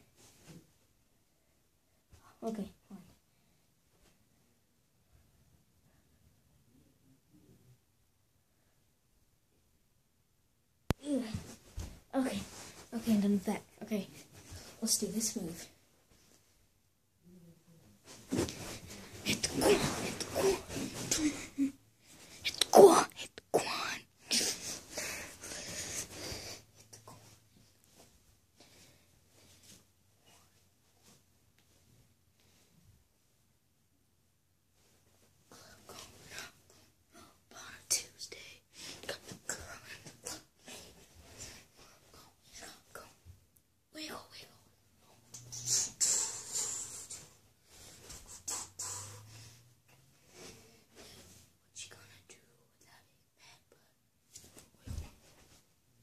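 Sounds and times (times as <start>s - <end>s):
person whispering: 12.2s - 15.7s, 17.2s - 21.7s, 22.3s - 25.2s, 35.5s - 40.8s, 43.9s - 47.4s, 48.2s - 49.3s, 51.6s - 54.0s
movement noise: 18.0s - 22.4s
dancing feet scuffing carpet: 18.1s - 21.2s.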